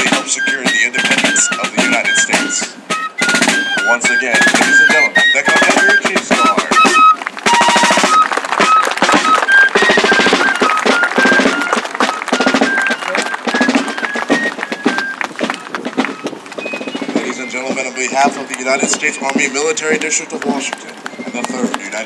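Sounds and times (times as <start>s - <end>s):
field drums: 0.0s - 22.0s
fifes playing marching tune: 0.0s - 22.0s.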